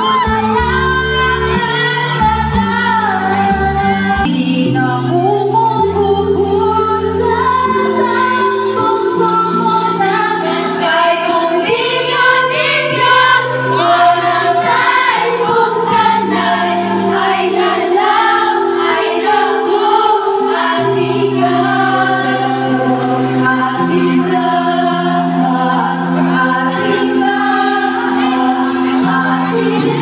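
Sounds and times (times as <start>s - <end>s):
women singing in harmony: 0.0s - 30.0s.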